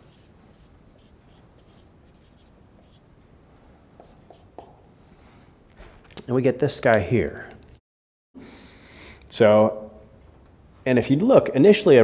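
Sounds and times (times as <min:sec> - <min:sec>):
marker squeaking on whiteboard: 0:00.0 - 0:03.0.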